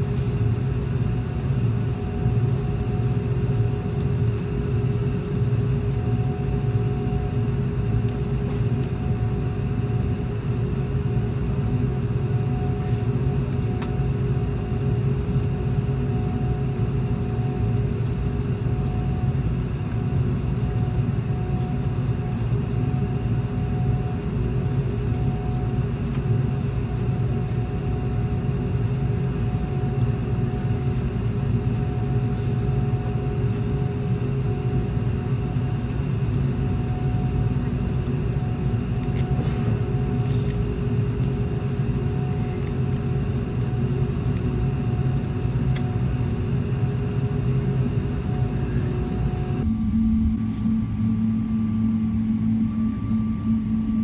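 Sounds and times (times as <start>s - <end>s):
aircraft cabin hum: 49.6s - 54.0s
faint steady tones: 49.6s - 54.0s.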